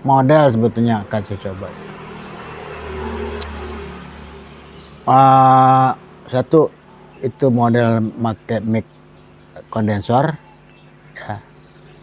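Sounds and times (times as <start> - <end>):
passing vehicle engine rumble: 0.0 - 9.8.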